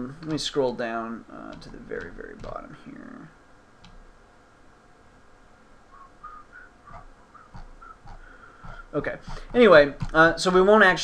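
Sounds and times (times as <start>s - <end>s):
man whistling softly: 5.9s - 8.2s.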